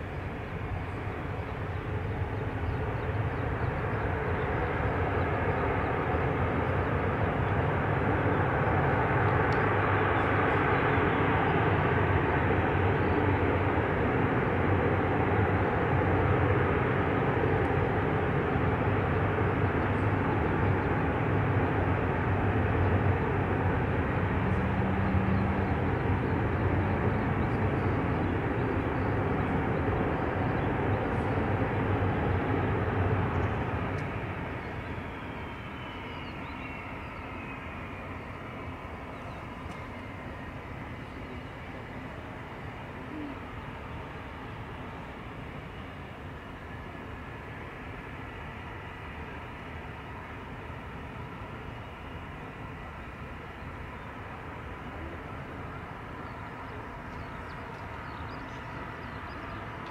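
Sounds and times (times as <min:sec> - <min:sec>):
aircraft engines running: 0:00.0 - 0:59.9.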